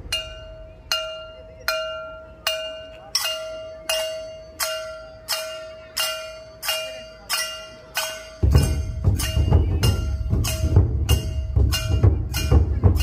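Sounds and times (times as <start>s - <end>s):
metal bell struck rhythmically: 0.0s - 13.0s.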